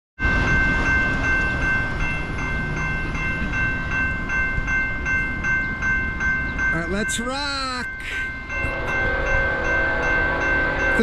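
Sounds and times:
crossing warning bell ringing: 0.2 - 11.0.

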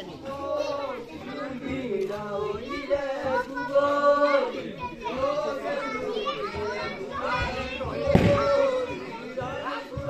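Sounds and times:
children and adults talking: 0.0 - 10.0.

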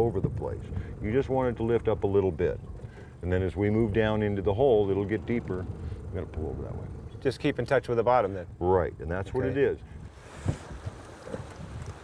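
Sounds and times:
wind noise on microphone: 9.2 - 12.0.

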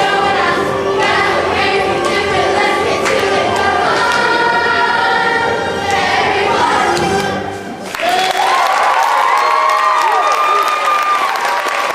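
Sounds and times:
children singing with music: 0.0 - 7.9
audience applauding: 7.8 - 11.9
high cheers: 7.8 - 11.9.

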